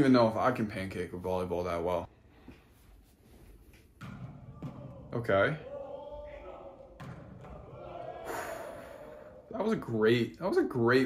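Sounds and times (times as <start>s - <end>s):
volleyball being struck: 4.0s - 5.2s, 6.8s - 8.0s.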